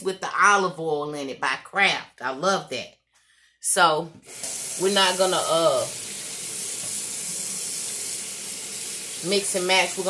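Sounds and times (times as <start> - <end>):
kitchen tap running water: 4.2 - 10.0.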